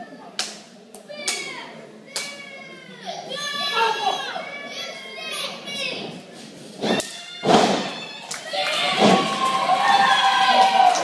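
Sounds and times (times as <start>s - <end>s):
children shouting: 6.9s - 11.0s.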